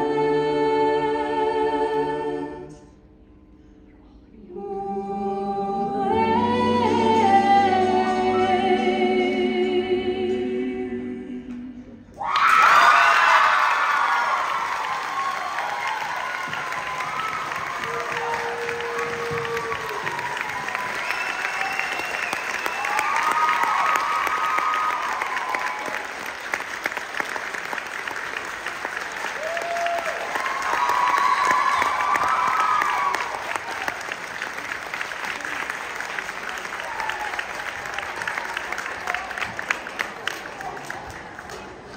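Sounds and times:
audience applauding: 12.3s - 41.9s.

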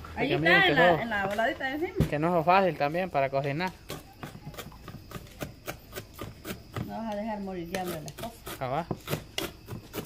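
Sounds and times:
knife chopping herbs on a board: 3.6s - 10.0s.

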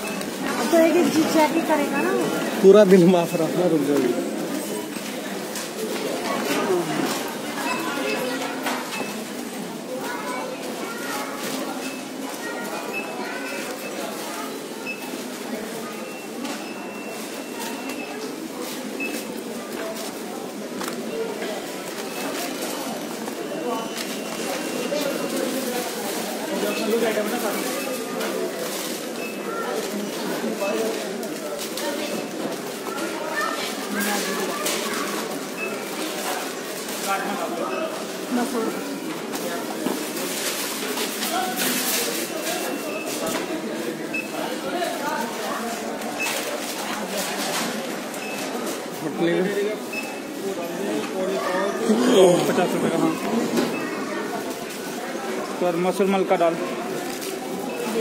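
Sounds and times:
murmur of distant voices: 0.0s - 58.0s
shop background bustle: 0.0s - 58.0s.

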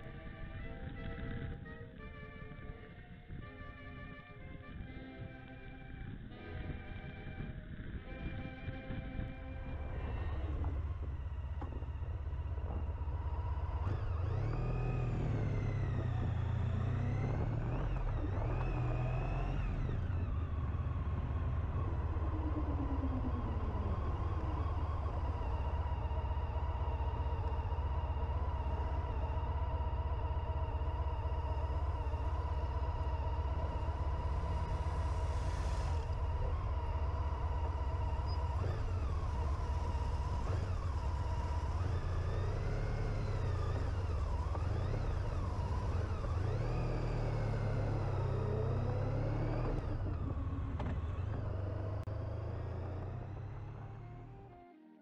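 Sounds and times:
wind and road noise: 0.0s - 54.6s
motorcycle engine rumble: 7.3s - 54.6s.

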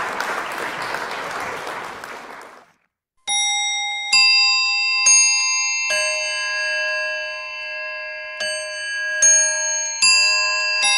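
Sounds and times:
bell-like chime tones ringing: 3.3s - 10.9s.

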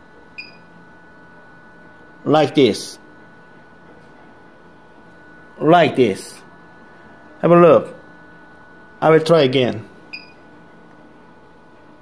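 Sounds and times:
touch panel electronic beep: 0.4s - 0.7s, 10.1s - 10.4s.

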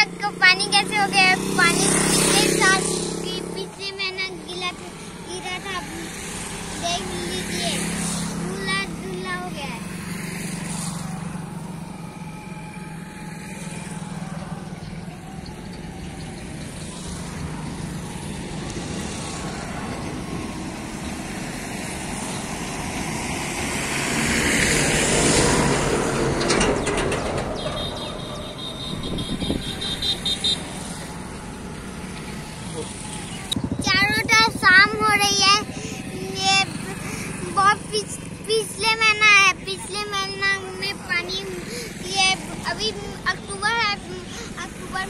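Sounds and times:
vehicle passing: 0.0s - 45.0s.

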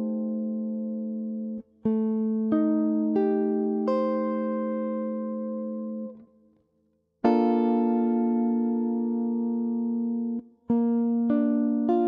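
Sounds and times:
clean electric guitar chords: 0.0s - 6.3s, 7.2s - 12.0s.

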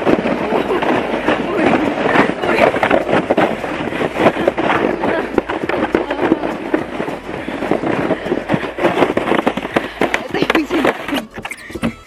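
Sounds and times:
plastic sled sliding over snow: 0.0s - 12.0s.

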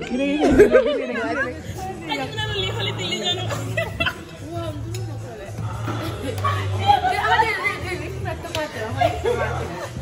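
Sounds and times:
women talking and exclaiming: 0.0s - 10.0s.

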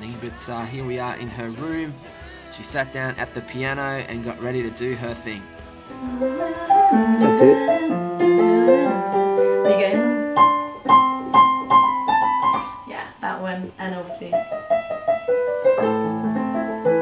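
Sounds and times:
piano chords: 5.9s - 13.0s, 14.2s - 17.0s
repeated high piano note: 6.2s - 9.0s.

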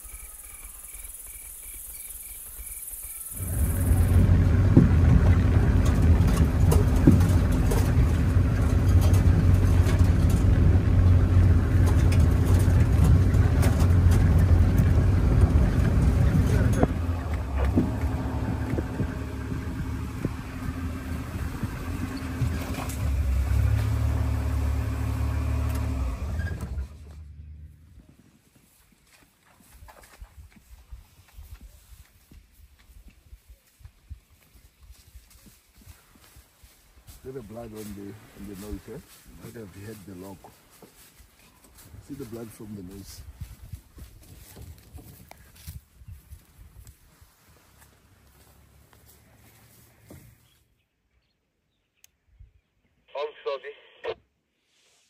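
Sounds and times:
faint insect chirping: 0.0s - 4.1s
vehicle engine driving off-road: 0.0s - 52.2s
knocks and rattles: 4.3s - 19.3s.

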